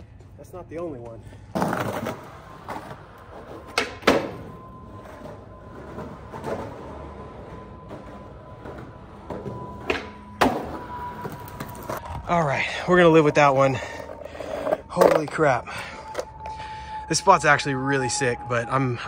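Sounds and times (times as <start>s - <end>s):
skateboard wheels rolling on concrete: 0.0s - 16.5s
skateboard clacks: 3.6s - 12.1s.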